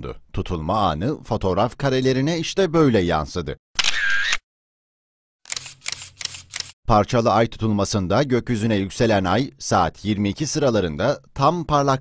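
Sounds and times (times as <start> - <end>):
camera shutter clicks: 3.8 - 4.4, 5.5 - 6.8.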